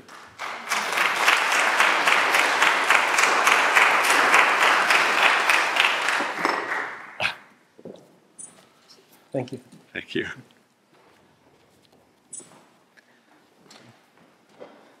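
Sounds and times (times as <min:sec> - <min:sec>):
congregation applauding: 0:00.0 - 0:07.4.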